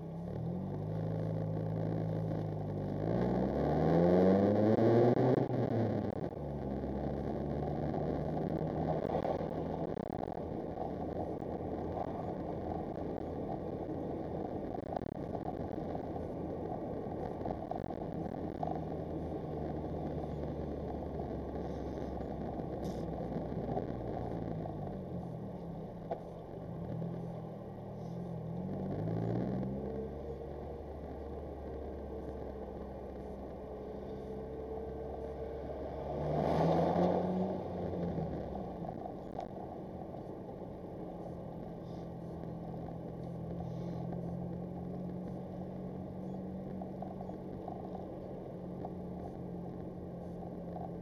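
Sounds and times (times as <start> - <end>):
car engine running: 0.0 - 51.0
road noise: 0.0 - 51.0.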